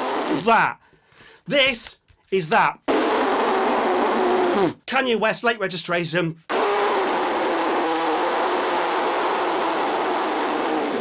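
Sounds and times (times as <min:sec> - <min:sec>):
man blowing air through lips: 0:00.0 - 0:01.4, 0:02.9 - 0:04.8, 0:06.5 - 0:11.0.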